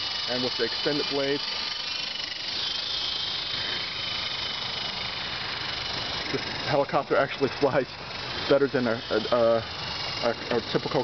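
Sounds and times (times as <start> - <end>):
rc helicopter motor whine: 0.0 - 11.0.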